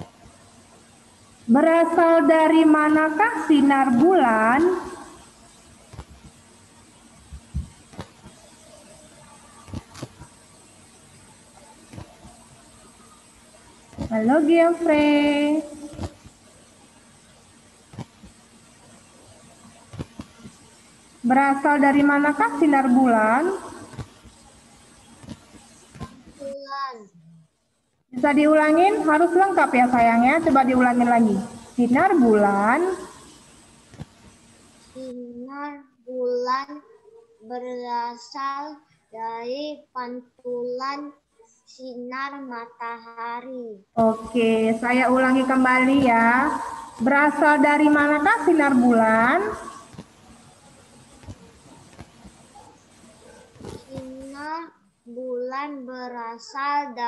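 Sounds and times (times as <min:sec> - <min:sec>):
microphone background hiss: 0:00.0 - 0:57.0
child's voice: 0:26.4 - 0:27.2, 0:35.0 - 0:43.8, 0:53.8 - 0:57.0
thin high whine: 0:44.0 - 0:55.2.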